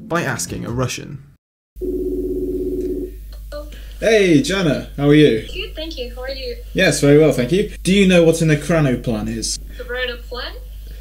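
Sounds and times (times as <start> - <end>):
video call ringing tone: 1.8 - 3.2.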